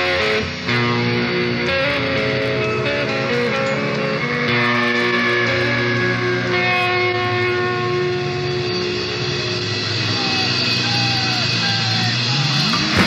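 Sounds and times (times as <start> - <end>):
bass guitar sustained notes: 0.0 - 13.0
distorted electric guitars: 0.0 - 13.0.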